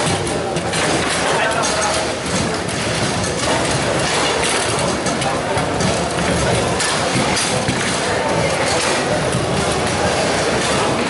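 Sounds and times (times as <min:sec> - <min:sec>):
din of busy hall: 0:00.0 - 0:11.0
foosball balls and rods knocking: 0:00.0 - 0:11.0.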